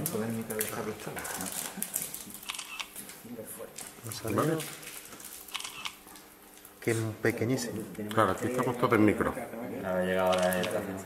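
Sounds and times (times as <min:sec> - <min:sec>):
people talking: 0:06.9 - 0:11.0.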